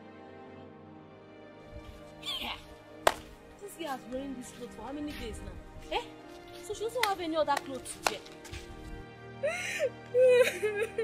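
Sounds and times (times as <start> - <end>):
soft string music: 0.0 - 11.0.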